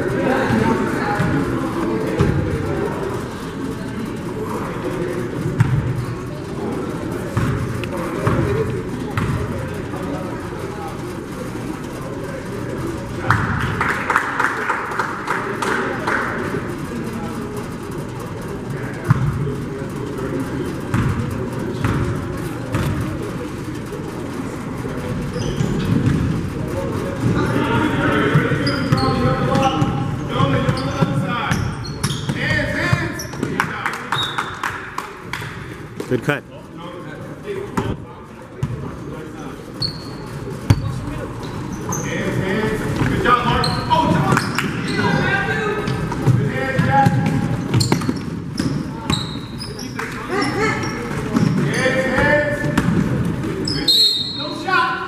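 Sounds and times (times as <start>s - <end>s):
indistinct echoing voices: 0.0s - 31.6s, 48.8s - 55.0s.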